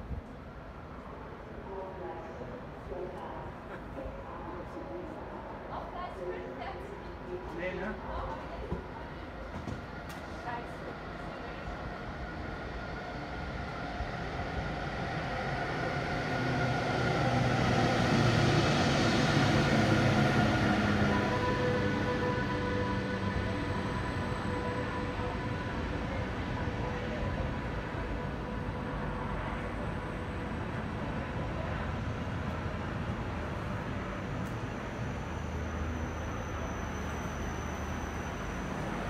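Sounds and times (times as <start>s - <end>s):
passenger train rolling: 0.0s - 39.0s.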